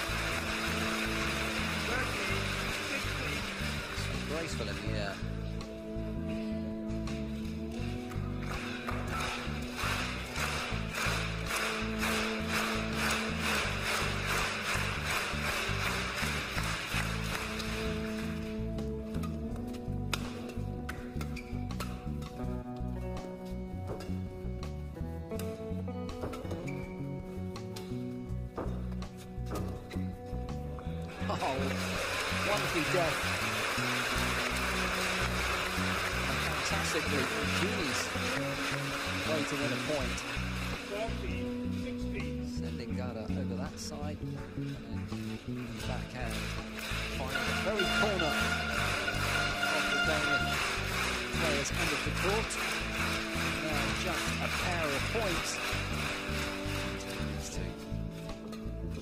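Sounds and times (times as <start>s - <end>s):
crowd applauding and cheering: 0.0s - 5.8s, 7.4s - 19.2s, 30.9s - 42.3s, 45.0s - 59.0s
music with steady beat: 0.0s - 59.0s.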